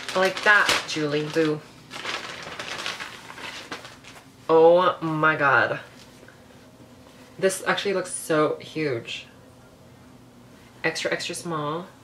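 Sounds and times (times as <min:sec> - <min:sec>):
packaging rustling and crinkling: 0:00.0 - 0:04.3.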